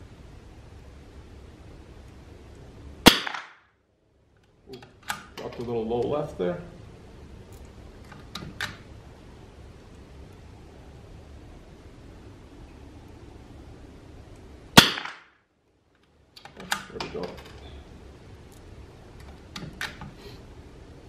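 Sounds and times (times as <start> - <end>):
rifle shot: 3.0 - 3.7, 14.8 - 15.4.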